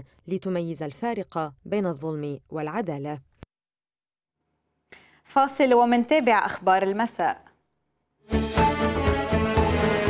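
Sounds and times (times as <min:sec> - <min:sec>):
narrator speaking: 0:00.0 - 0:03.4.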